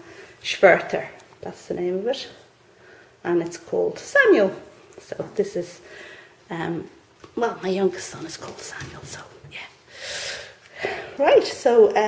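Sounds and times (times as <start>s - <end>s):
woman breathing: 2.6s - 3.2s, 5.8s - 6.5s, 9.8s - 11.2s.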